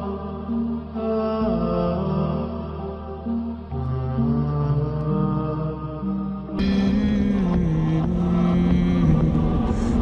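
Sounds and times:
low drone: 0.0 - 10.0
vocal chanting: 0.0 - 10.0.

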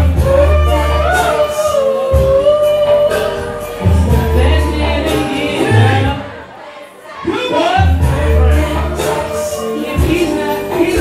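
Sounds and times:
loud club music with bass: 0.0 - 6.5, 7.2 - 11.0.

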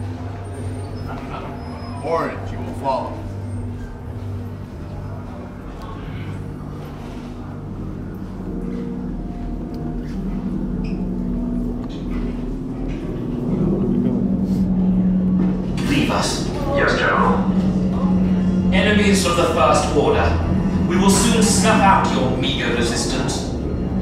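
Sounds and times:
low electronic hum: 0.0 - 24.0.

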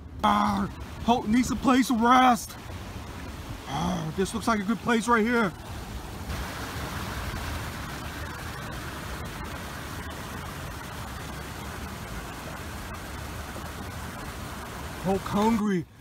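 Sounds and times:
creek rushing over rocks: 0.0 - 16.0.

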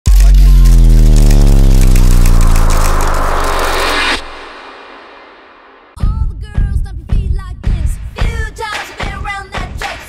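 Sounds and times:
deep bass tone sliding down: 0.1 - 5.6.

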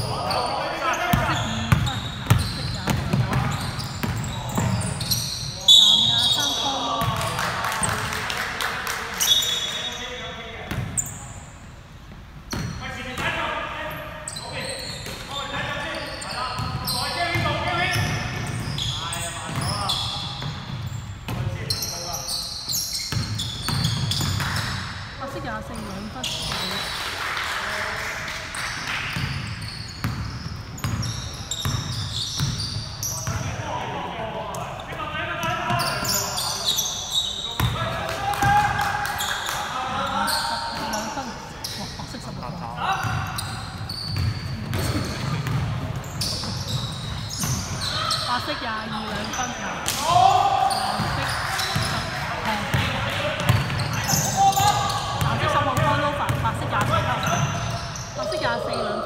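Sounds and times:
players calling out: 29.6 - 59.0
basketball bouncing on wooden floor: 44.2 - 46.8.

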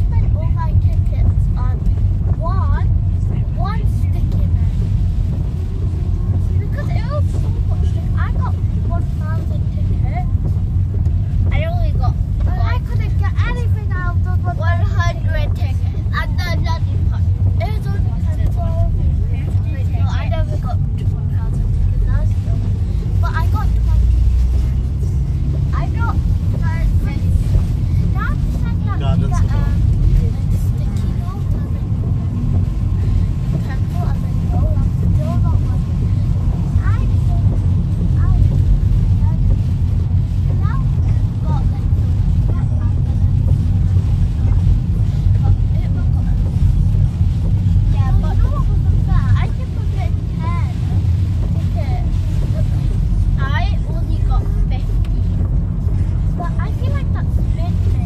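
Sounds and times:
car driving on wet road: 0.0 - 58.0
people talking: 0.0 - 58.0.

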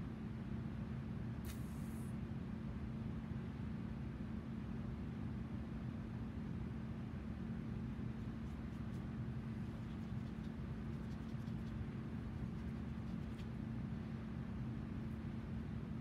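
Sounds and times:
electric fan whirring: 7.6 - 16.0.

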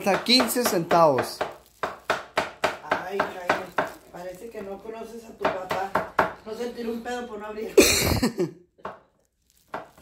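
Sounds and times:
knife chopping on wooden board: 0.0 - 4.0, 5.4 - 6.4.

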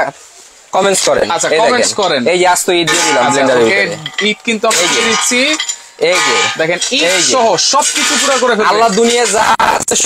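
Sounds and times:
food chunks clattering in metal jar: 1.3 - 9.4.

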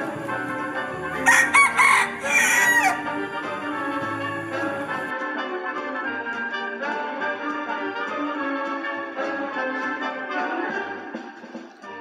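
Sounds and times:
rooster crowing: 0.0 - 5.1.

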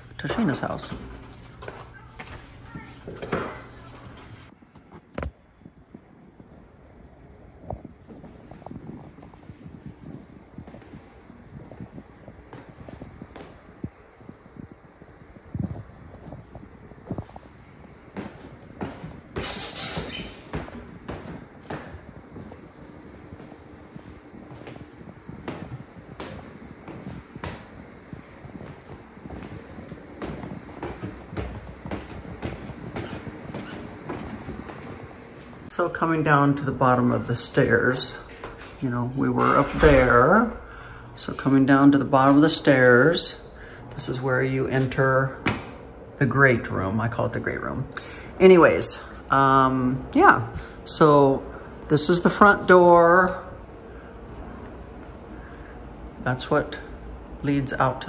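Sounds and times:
footsteps on stairs: 0.0 - 5.4, 15.7 - 35.8, 36.8 - 45.9.

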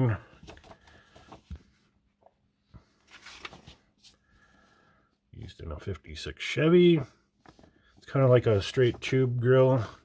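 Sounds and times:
magazine pages rustling: 0.2 - 1.9, 2.7 - 4.6, 7.4 - 10.0.

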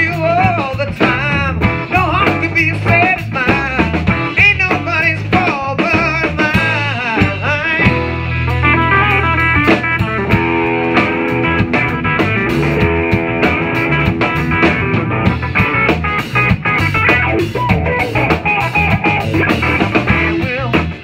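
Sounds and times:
drum kit: 0.0 - 21.0
electric bass: 0.0 - 21.0
electric guitar lead lines: 0.0 - 21.0.

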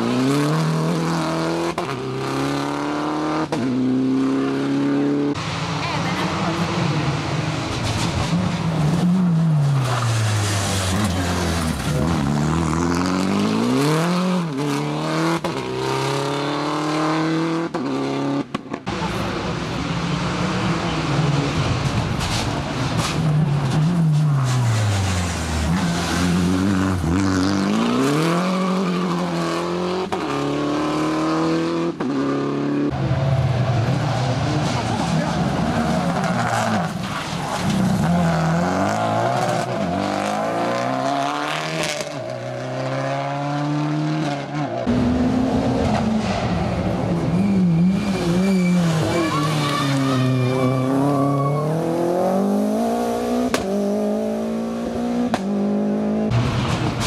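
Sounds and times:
rally car engines revving: 0.0 - 57.0
tyre squeal: 47.3 - 52.2.

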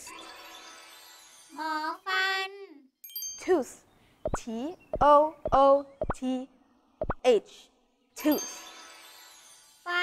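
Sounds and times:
ringing chime: 0.0 - 1.6, 3.0 - 3.5, 8.2 - 9.9.

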